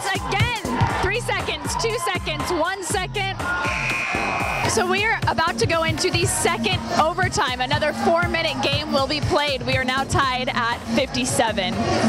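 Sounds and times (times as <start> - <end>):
scoreboard buzzer: 3.7 - 4.9.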